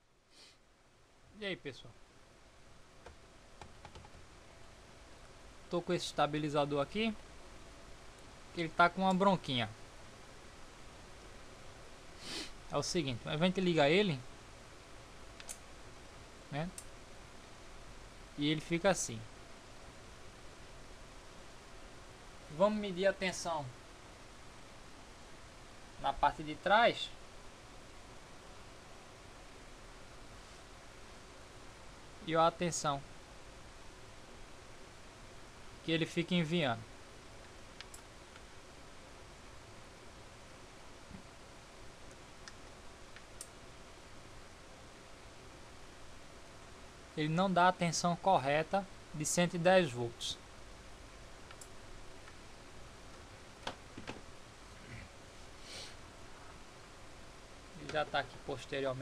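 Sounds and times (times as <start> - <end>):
steady low hiss: 0.0 - 59.0.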